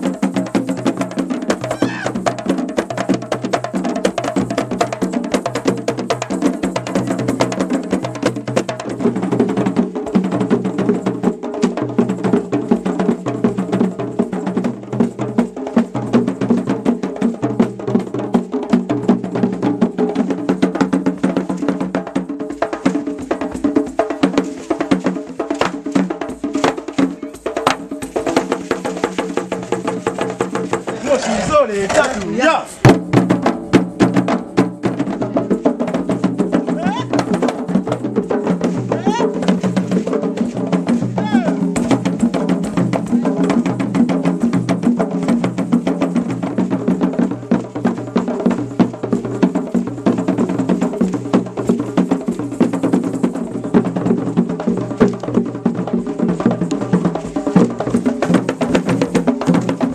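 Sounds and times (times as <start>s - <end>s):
hand drums: 0.0s - 59.9s
bass drums beaten with sticks: 22.7s - 59.9s.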